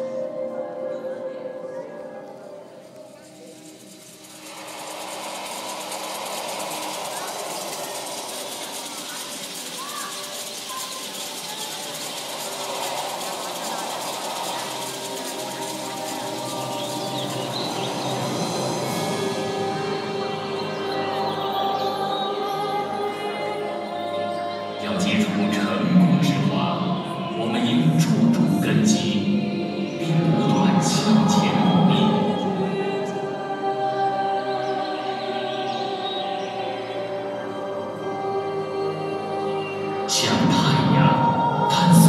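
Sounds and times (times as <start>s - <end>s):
bell-like music: 0.0s - 42.0s
loud rattling rushing noise: 3.4s - 20.2s.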